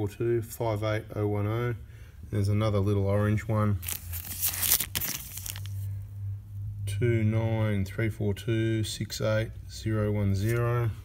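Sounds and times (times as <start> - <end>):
plastic bag crinkling: 3.8 - 5.9.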